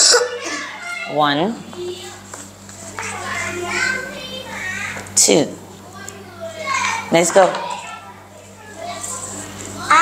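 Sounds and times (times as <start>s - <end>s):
boy reading aloud: 0.0s - 10.0s
steady low hum: 0.0s - 10.0s.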